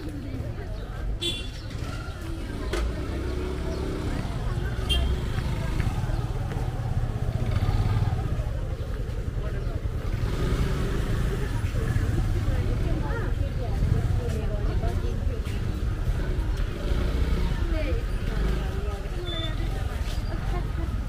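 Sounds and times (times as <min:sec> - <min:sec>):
motorcycle and scooter engines: 0:00.0 - 0:21.0
people chatting: 0:00.0 - 0:21.0
traffic rumble: 0:00.0 - 0:21.0.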